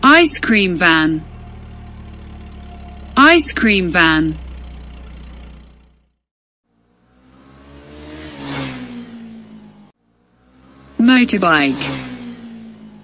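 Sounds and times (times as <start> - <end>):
low engine hum: 0.0 - 13.0
vehicle engine passing by: 0.0 - 13.0.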